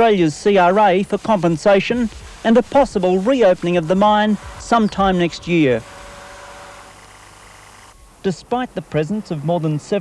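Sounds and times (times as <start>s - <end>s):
low hum: 1.2s - 9.5s.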